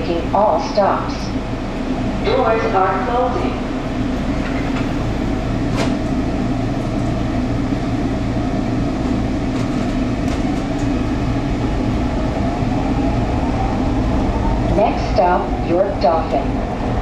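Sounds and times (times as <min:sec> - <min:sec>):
train equipment hum: 0:00.0 - 0:17.0
train doors shutting knock: 0:05.6 - 0:06.2.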